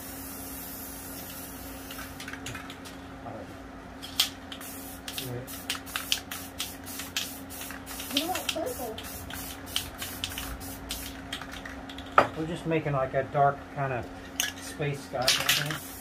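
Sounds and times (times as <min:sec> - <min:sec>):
spray can bursts: 0:00.0 - 0:02.4, 0:04.2 - 0:11.3, 0:15.4 - 0:16.0.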